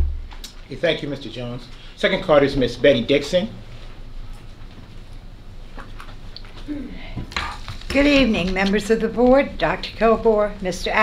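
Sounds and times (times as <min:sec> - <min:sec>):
low room noise: 0:00.0 - 0:11.0
woman speaking: 0:07.9 - 0:11.0.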